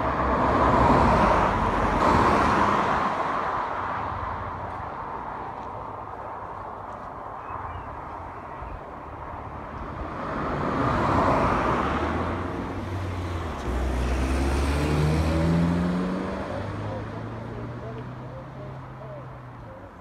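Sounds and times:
car engine hum: 0.0s - 20.0s
cars passing at speed: 0.0s - 20.0s.

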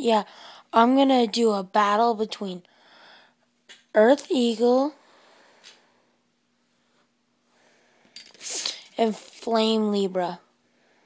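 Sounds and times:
person speaking: 3.9s - 5.0s, 8.4s - 10.4s
sharp intake of breath through nose: 7.6s - 8.9s.

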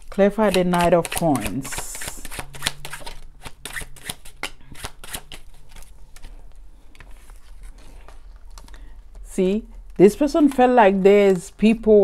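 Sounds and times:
cards being shuffled: 0.3s - 9.3s, 10.1s - 11.8s.

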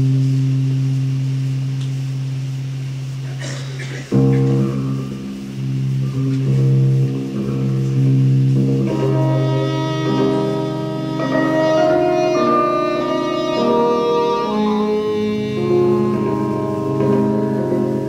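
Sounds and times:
live instrumental music chords: 0.0s - 18.0s.

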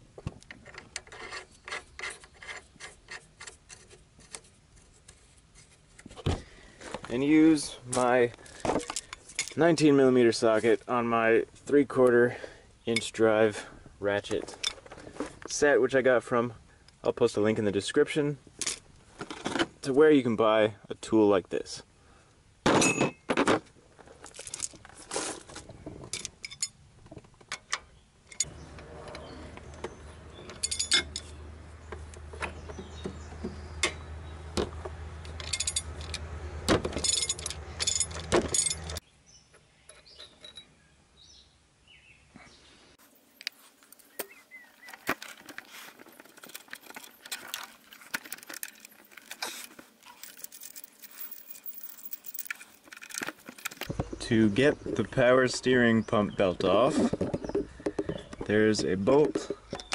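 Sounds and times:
metal sockets clinking: 26.1s - 26.8s, 27.5s - 33.0s, 35.2s - 39.0s, 39.9s - 40.7s, 44.9s - 53.9s.

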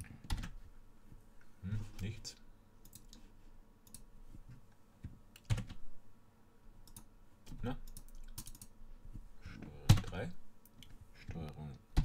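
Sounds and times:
keyboard and mouse clicks: 2.8s - 3.2s, 3.8s - 4.1s, 5.0s - 5.8s, 6.8s - 8.7s.

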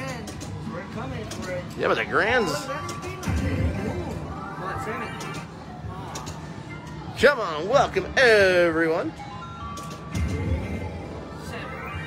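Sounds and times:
slot machine chime melody: 9.2s - 12.0s.

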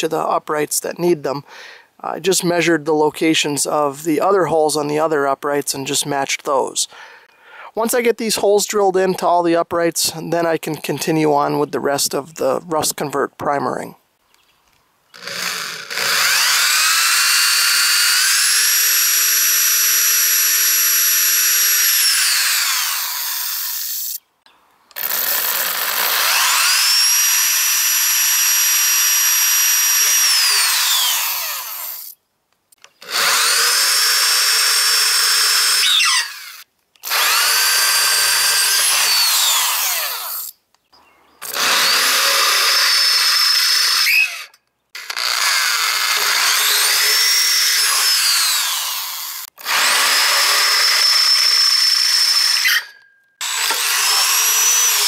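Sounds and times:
electric drill whining: 15.1s - 24.2s, 24.9s - 32.2s, 33.0s - 40.6s, 41.4s - 55.0s.

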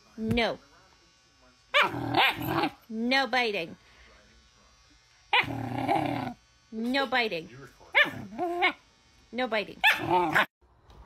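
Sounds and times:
puppy growling and barking: 1.8s - 2.8s, 5.4s - 6.4s, 8.0s - 8.8s, 9.8s - 10.6s.

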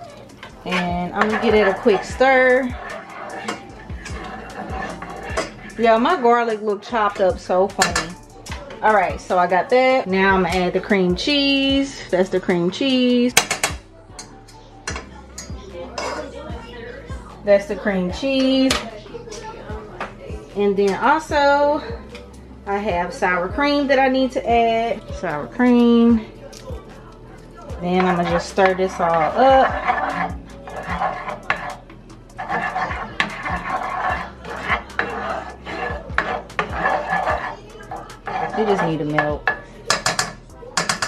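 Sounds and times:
spoon stirring sauce in pan: 0.0s - 8.8s, 27.4s - 41.0s
spoon knocking and scraping pan: 0.3s - 9.6s, 12.8s - 16.2s, 27.8s - 41.0s
spoon knocking on metal pot: 13.4s - 13.8s, 38.3s - 41.0s.

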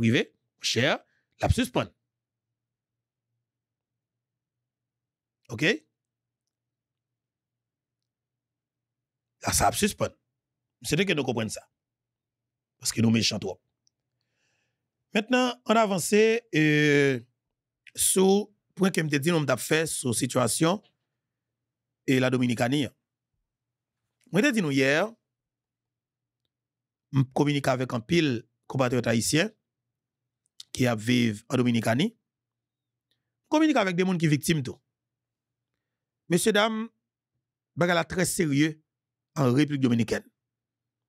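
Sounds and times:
man speaking: 0.0s - 1.9s, 5.5s - 5.9s, 9.4s - 10.2s, 10.8s - 11.7s, 12.8s - 13.6s, 15.1s - 17.3s, 17.9s - 20.9s, 22.1s - 23.0s, 24.3s - 25.2s, 27.2s - 29.6s, 30.6s - 32.2s, 33.5s - 34.8s, 36.3s - 37.0s, 37.8s - 38.8s, 39.4s - 40.3s.

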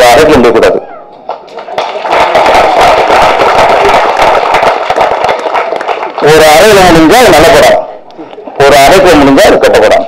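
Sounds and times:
audience applauding: 1.3s - 6.7s.

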